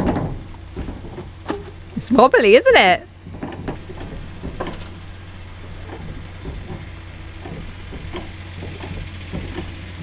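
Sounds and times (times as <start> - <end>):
hydraulic pump knocks and clicks: 0.0 - 1.7, 3.3 - 10.0
steady low hum: 0.0 - 10.0.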